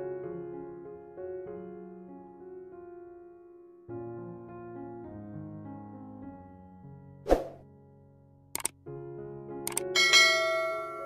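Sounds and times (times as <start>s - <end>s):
soft background music: 0.0s - 11.0s
click sound effect: 8.6s - 8.8s, 9.7s - 9.9s.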